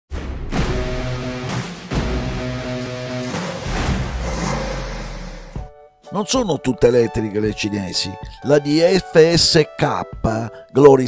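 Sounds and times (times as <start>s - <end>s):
intro music: 0.6s - 6.0s
rushing rumbling sound effect: 2.7s - 5.7s
narration: 6.1s - 11.0s.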